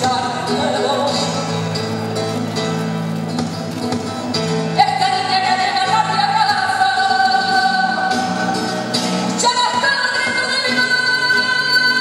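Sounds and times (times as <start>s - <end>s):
flamenco song with held vocal notes: 0.0s - 12.0s.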